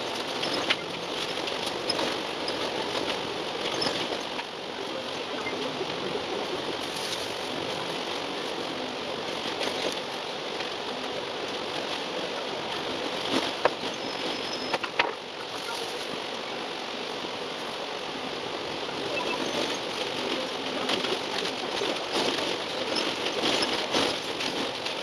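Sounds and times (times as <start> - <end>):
bus engine and road noise: 0.0 - 25.0.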